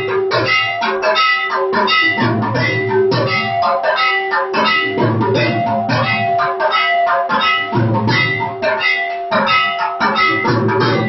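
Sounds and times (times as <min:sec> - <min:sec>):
heavy drum beat: 0:00.0 - 0:11.0
ringing bells and metal percussion: 0:00.0 - 0:11.0.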